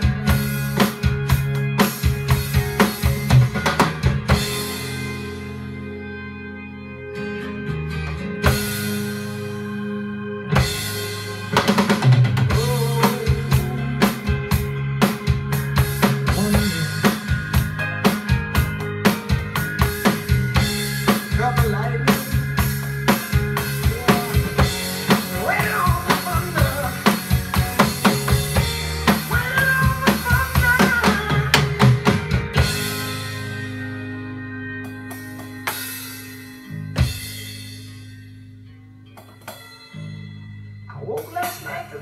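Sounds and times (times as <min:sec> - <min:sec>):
electronic drum kit: 0:00.0 - 0:05.9, 0:08.3 - 0:40.6, 0:41.2 - 0:42.0
rock backing track: 0:00.0 - 0:42.0.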